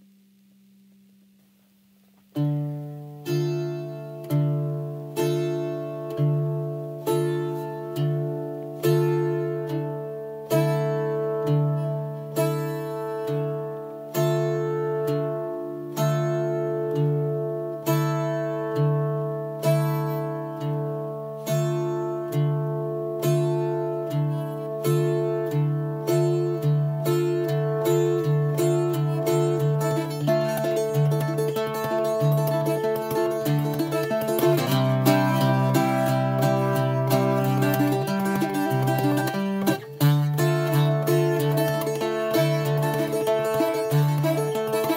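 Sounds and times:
bouzouki plucking over drone strings: 0:02.4 - 0:44.9.

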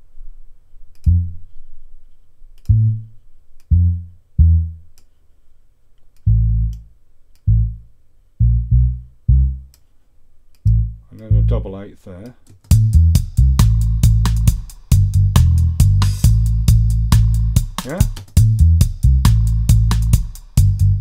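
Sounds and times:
deep dub bass notes: 0:01.0 - 0:01.5, 0:02.7 - 0:04.9, 0:06.2 - 0:06.9, 0:07.5 - 0:09.7, 0:10.7 - 0:11.8, 0:12.7 - 0:21.0.

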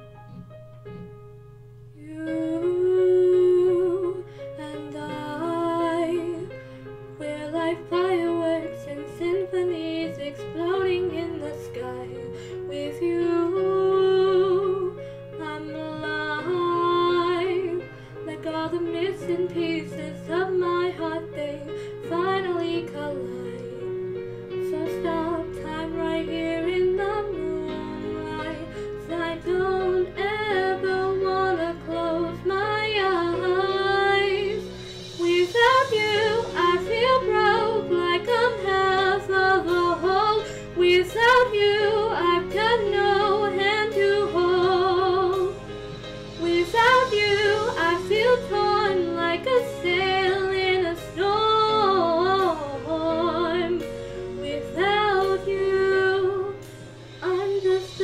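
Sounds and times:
karaoke backing track: 0:00.0 - 0:58.0
woman singing a slow ballad: 0:02.0 - 0:58.0.

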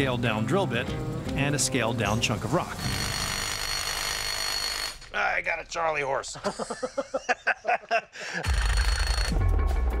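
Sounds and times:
power drill grinding into rock: 0:02.7 - 0:05.1, 0:08.4 - 0:09.3.

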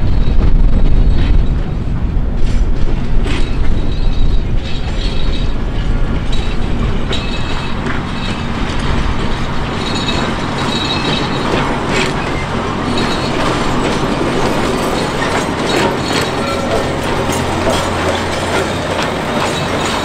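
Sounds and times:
diesel locomotive running: 0:00.0 - 0:20.0
wheels clattering on rails: 0:00.0 - 0:20.0.

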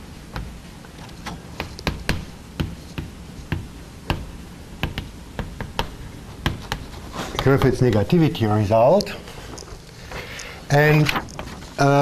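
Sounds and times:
chalk tapping on blackboard: 0:01.5 - 0:08.1.

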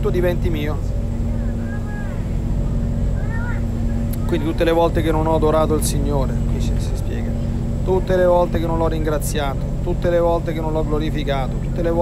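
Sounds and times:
constant hum: 0:00.0 - 0:12.0
low background rumble: 0:00.0 - 0:12.0.

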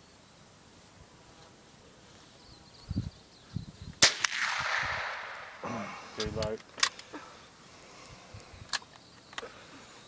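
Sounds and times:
rifle shot with echo: 0:04.0 - 0:05.6.

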